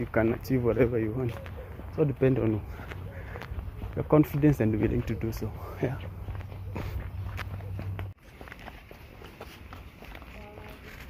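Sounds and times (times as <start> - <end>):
footsteps of person walking: 0.0 - 11.0.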